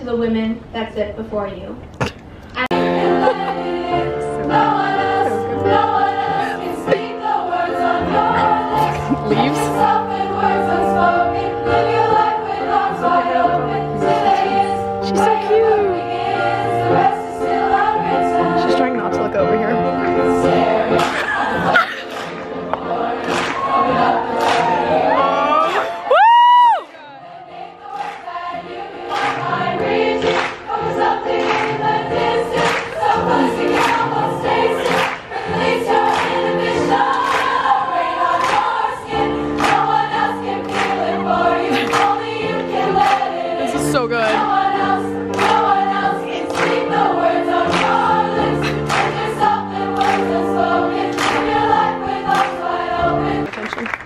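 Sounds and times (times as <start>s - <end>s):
choir of women singing: 2.8s - 18.9s, 19.9s - 26.1s, 27.0s - 53.5s
hand claps: 21.0s - 23.7s, 38.4s - 38.7s, 39.6s - 39.9s, 40.6s - 41.0s, 45.3s - 45.6s, 47.7s - 48.0s, 48.6s - 49.3s, 50.0s - 50.4s, 51.1s - 51.5s, 52.3s - 52.6s
loud close whoop: 25.1s - 26.9s.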